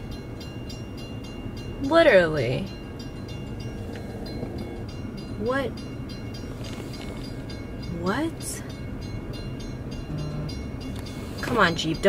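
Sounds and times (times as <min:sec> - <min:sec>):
low steady rumble: 0:00.0 - 0:12.0
railroad crossing bell dinging: 0:00.0 - 0:12.0.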